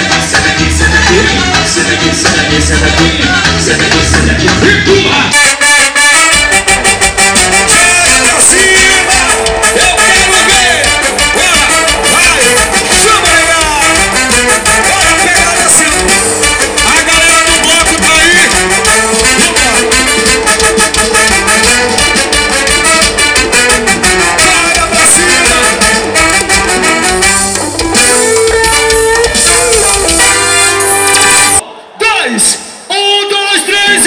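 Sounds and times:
fast steady percussion: 0.0 - 5.0, 6.2 - 31.6
heavy bass: 0.0 - 5.4, 6.3 - 31.6
horn-like melody: 0.0 - 31.7
loud live carnival band music: 0.0 - 34.0.

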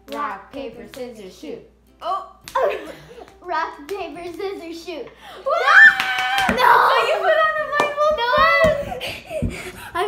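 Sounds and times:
girls squealing and shrieking: 5.4 - 9.0
sharp hand claps: 5.8 - 6.7, 7.8 - 8.8.

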